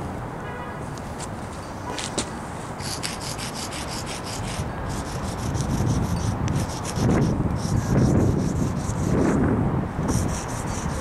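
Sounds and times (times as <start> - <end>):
chalk scraping on concrete: 2.8 - 11.0.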